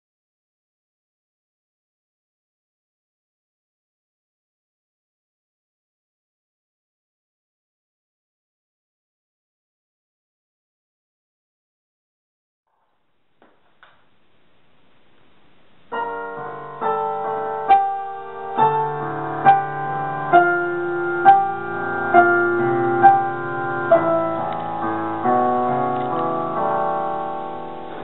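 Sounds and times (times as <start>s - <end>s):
digital piano chords: 15.6s - 28.0s.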